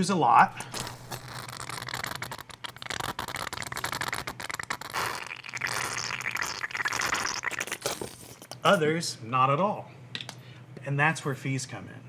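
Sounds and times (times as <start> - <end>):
ketchup bottle squirting: 0.6 - 8.6.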